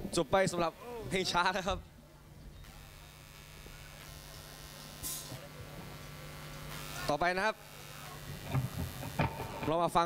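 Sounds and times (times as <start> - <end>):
faint electrical hum: 0.0 - 10.0
sound system hiss: 2.6 - 10.0.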